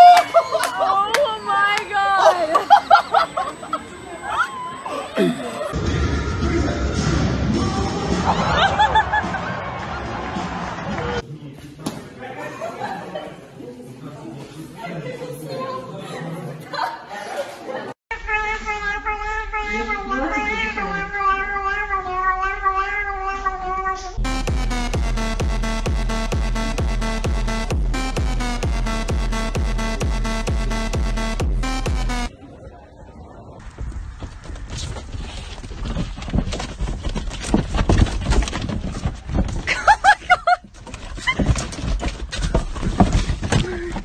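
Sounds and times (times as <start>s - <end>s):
kitten meowing: 18.3s - 24.2s
knocks and rustling: 33.8s - 39.9s, 40.6s - 44.0s.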